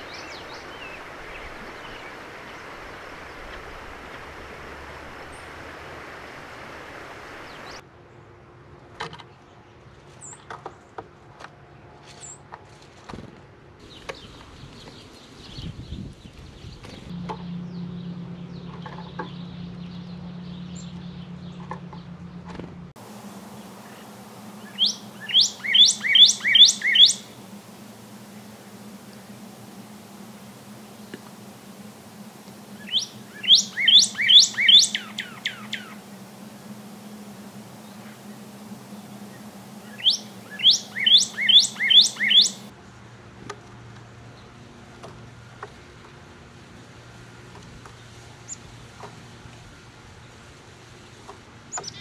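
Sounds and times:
steady low hum: 0.0s - 7.8s, 17.1s - 42.7s
high bird chirps: 23.1s - 42.7s
cardinal singing whistled notes: 23.2s - 42.7s.

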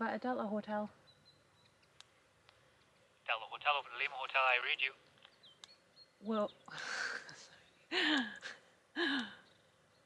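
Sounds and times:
woman laughing: 7.9s - 9.3s.

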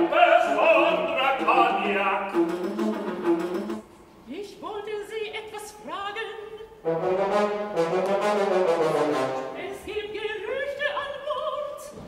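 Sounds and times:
orchestral music: 6.8s - 9.8s.

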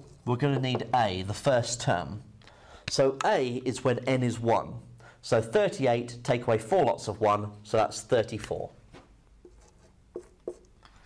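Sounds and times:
marker pen on whiteboard: 9.0s - 11.0s.

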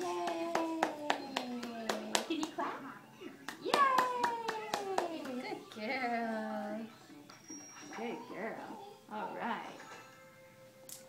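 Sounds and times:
hands clapping: 0.0s - 2.6s, 3.4s - 5.9s.

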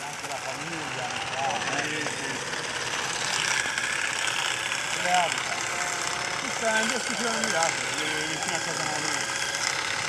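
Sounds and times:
people talking: 0.0s - 2.5s, 5.0s - 9.3s
olive harvester rattling branches: 0.0s - 10.0s.

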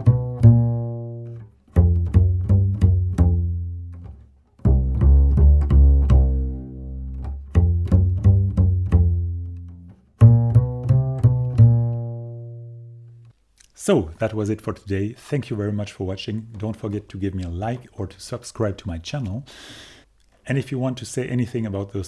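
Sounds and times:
double bass plucked pizzicato: 0.0s - 13.3s.

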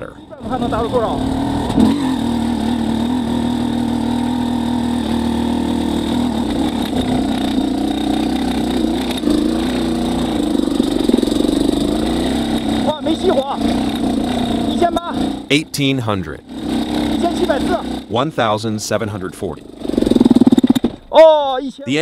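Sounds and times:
two-stroke engine lugging: 0.0s - 22.0s.

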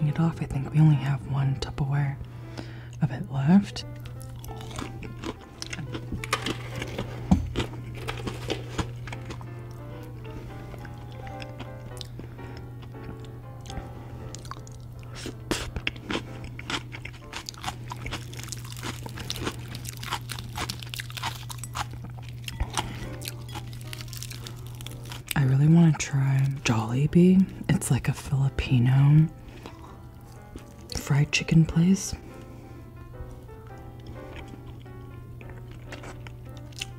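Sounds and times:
soft background music: 0.0s - 36.9s
steady low hum: 0.0s - 36.9s
crunching crispy fried food: 3.9s - 26.6s.

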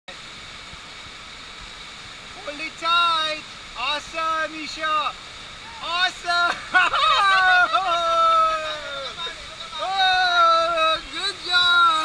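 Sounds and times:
rushing water: 0.1s - 12.0s.

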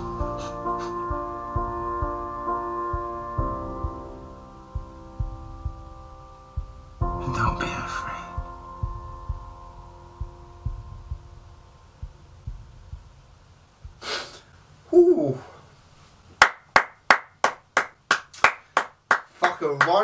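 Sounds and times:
soundtrack music: 0.0s - 13.0s
low irregular thumps: 0.0s - 14.1s
man exhaling: 14.0s - 14.5s
man saying ohh: 14.9s - 15.6s
hands clapping: 16.4s - 20.0s.

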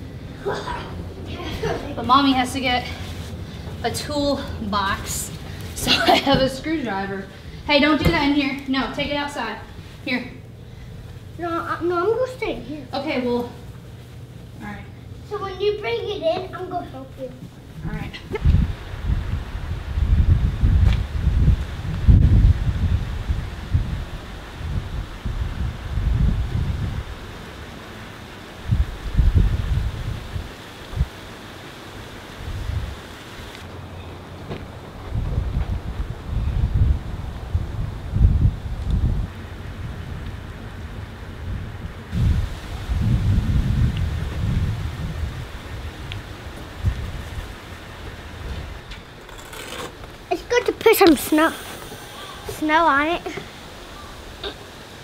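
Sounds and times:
wind buffeting microphone: 17.8s - 27.6s, 28.6s - 31.2s, 32.4s - 49.2s.

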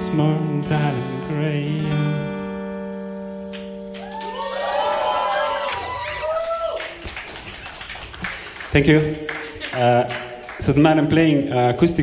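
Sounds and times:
acoustic guitar chord ringing: 0.0s - 4.0s.

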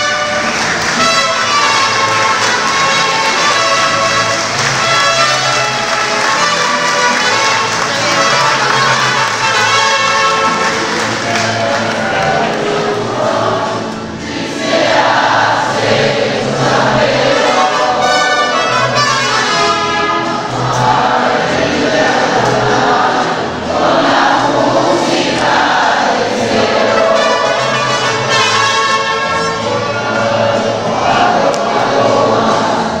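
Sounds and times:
mariachi band playing: 0.0s - 33.0s
voices singing together: 0.0s - 33.0s.

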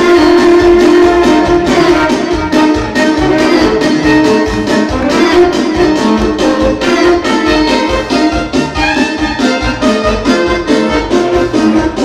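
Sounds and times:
accordion and violin dance tune: 0.0s - 12.0s
steady beat: 0.0s - 12.0s.

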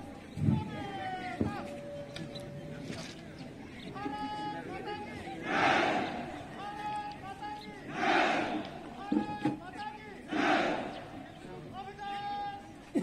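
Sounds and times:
crowd shouting in response: 5.2s - 9.4s, 10.1s - 11.3s.

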